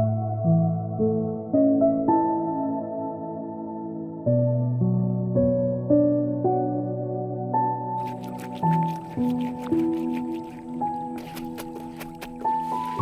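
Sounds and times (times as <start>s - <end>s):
slow background music: 0.0s - 13.0s
water splashing and dripping: 8.0s - 13.0s
wet cloth sloshed in metal bucket: 8.0s - 13.0s.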